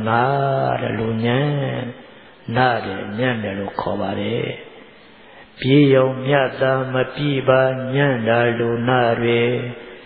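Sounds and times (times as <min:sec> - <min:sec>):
monk chanting: 0:00.0 - 0:04.8, 0:05.6 - 0:10.0.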